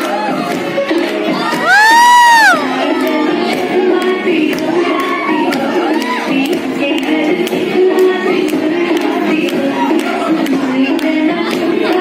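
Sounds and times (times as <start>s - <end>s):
dance music with steady beat: 0.0s - 12.0s
loud high-pitched whoop: 1.6s - 2.6s.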